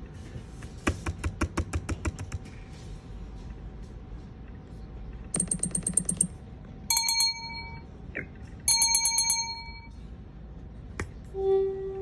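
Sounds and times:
bright ringing chime: 6.9s - 7.9s, 8.7s - 9.9s.

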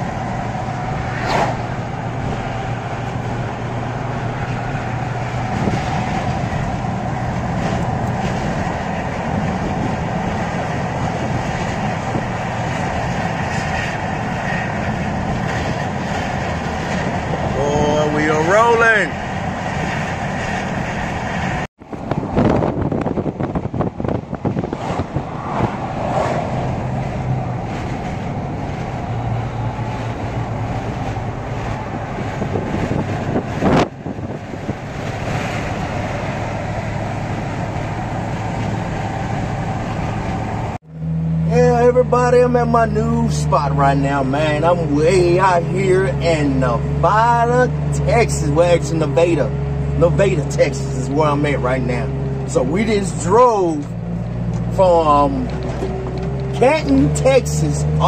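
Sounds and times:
road and engine noise in cab: 0.0s - 58.0s.

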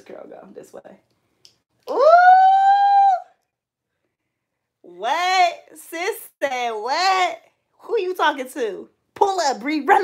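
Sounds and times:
woman squealing: 1.9s - 3.4s.

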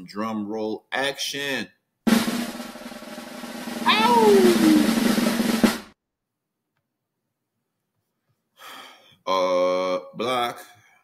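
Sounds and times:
snare drum roll: 2.1s - 6.0s.

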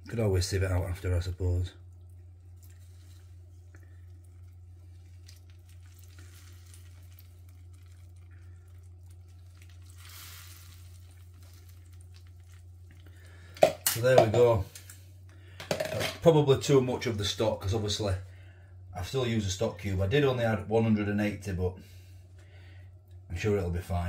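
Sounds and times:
low hum: 0.0s - 24.0s
liquid trickling into a dish: 1.8s - 13.9s
hiss of liquid: 9.9s - 11.2s.

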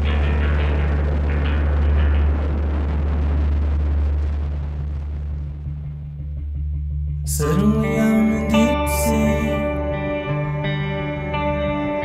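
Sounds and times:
low music drone: 0.0s - 12.0s
noisy wash: 0.0s - 12.0s.

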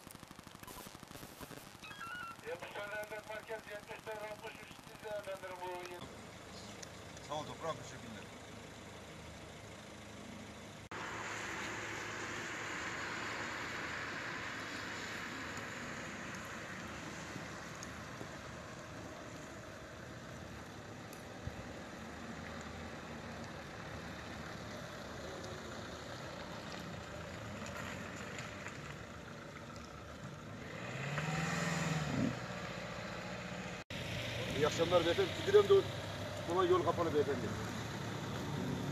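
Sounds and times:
tyres hissing on wet road: 10.9s - 20.9s, 21.6s - 38.9s
car passing close by: 30.6s - 38.9s.

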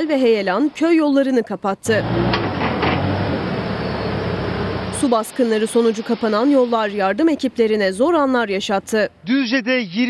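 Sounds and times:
excavator diesel engine running: 1.9s - 8.4s.

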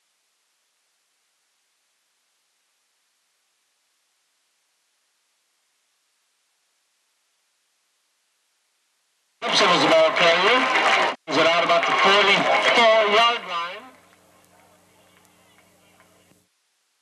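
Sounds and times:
faint steady hum: 0.0s - 17.0s
man speaking close to microphone: 9.4s - 14.0s.

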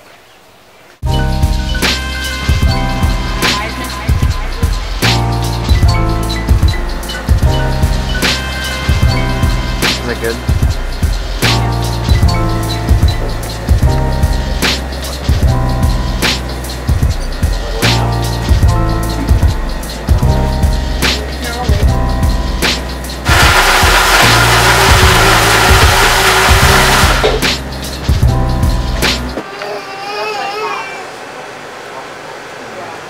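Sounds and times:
music with steady beat: 1.0s - 29.4s
blender running: 23.2s - 27.5s.

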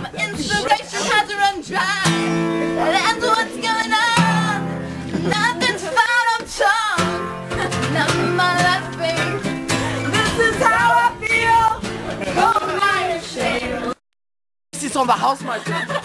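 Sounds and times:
woman singing: 0.0s - 2.2s, 2.8s - 14.0s
acoustic guitar strumming chords: 0.2s - 6.4s, 7.0s - 14.0s.

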